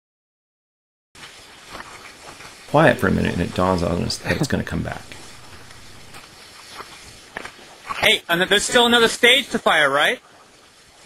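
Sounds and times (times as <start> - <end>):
faint steady hiss: 1.2 - 11.0.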